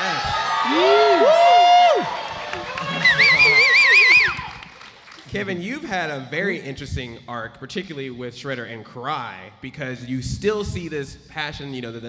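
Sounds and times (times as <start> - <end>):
person falsetto woo with vibrato: 3.0 - 4.5.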